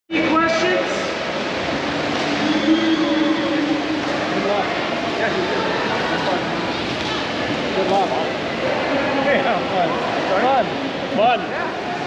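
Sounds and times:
voices: 0:00.2 - 0:12.0.

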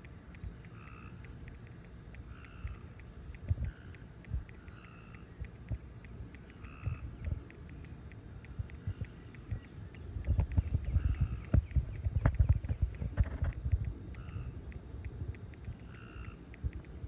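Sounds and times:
small birds calling: 0:00.0 - 0:17.0
low thumps on microphone: 0:10.3 - 0:13.9.

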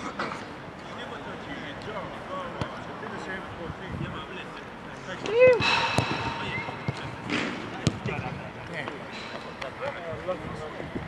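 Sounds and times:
distant voices of players: 0:00.1 - 0:11.0
sharp knock: 0:05.6 - 0:07.6.

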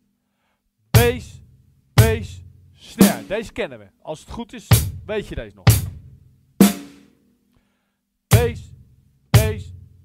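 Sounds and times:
bass drum beat: 0:01.0 - 0:03.4, 0:04.7 - 0:06.8, 0:08.3 - 0:10.0.

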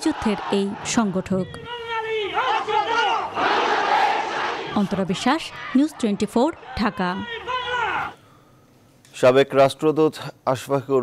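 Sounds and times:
crowd shouting together: 0:00.0 - 0:08.2.

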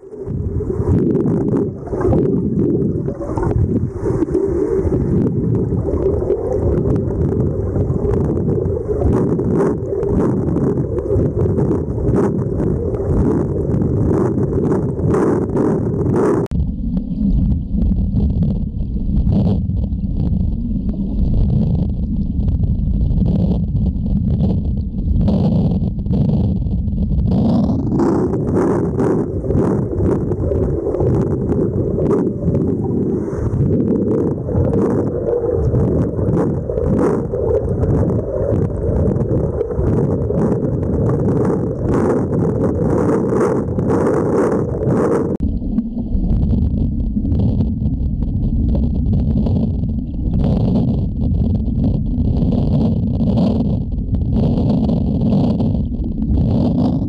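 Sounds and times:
underwater churning water and bubbles: 0:00.0 - 0:57.0.

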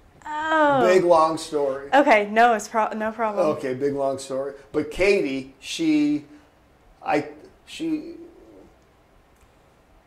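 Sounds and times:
man's drawn-out hesitation sound: 0:00.6 - 0:01.9.

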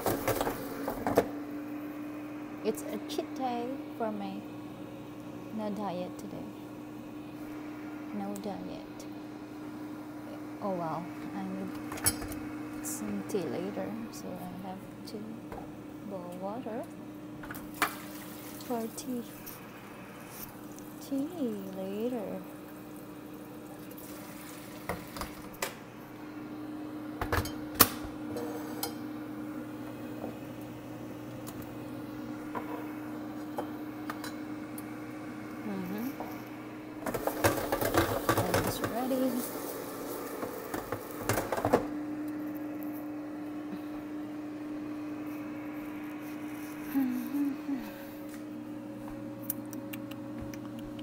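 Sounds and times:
air fryer fan hum: 0:00.0 - 0:51.0.

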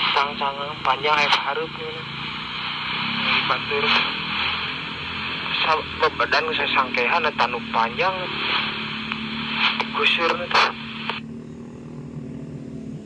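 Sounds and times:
voice through radio speaker: 0:00.0 - 0:04.6, 0:05.2 - 0:11.2
radio static hiss: 0:00.0 - 0:11.4.

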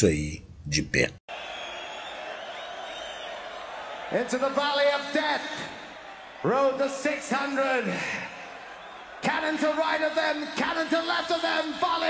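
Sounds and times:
whoops: 0:01.3 - 0:06.5
crowd cheering and shouting: 0:01.3 - 0:12.0.

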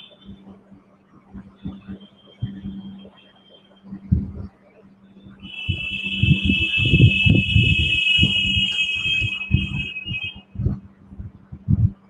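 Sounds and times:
low hum: 0:00.0 - 0:12.0
muffled low sounds: 0:00.0 - 0:12.0
high-pitched alarm tone: 0:05.4 - 0:10.4.

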